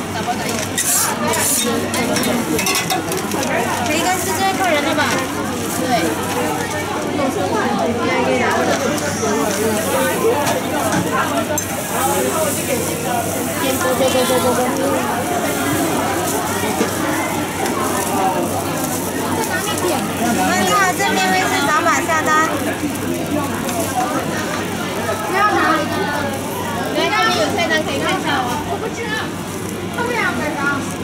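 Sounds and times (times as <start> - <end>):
people talking: 0.0 - 31.0.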